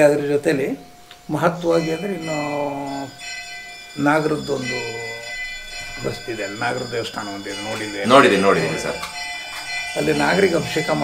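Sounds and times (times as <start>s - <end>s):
temple bell ringing: 0.0s - 11.0s.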